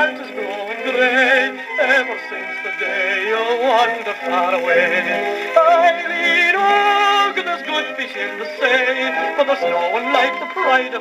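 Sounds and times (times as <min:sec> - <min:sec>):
gramophone record playing: 0:00.0 - 0:11.0
violin cello and piano music: 0:00.0 - 0:11.0.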